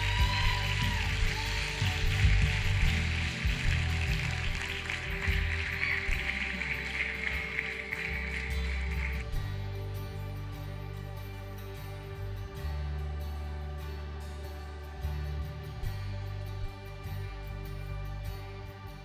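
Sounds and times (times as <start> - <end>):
audience applause: 0.0 - 9.3
soft band music: 0.0 - 19.0.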